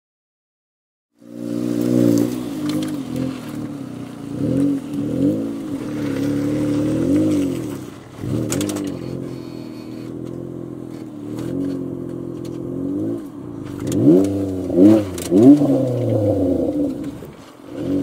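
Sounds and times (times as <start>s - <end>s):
car engine revving: 1.2s - 18.0s.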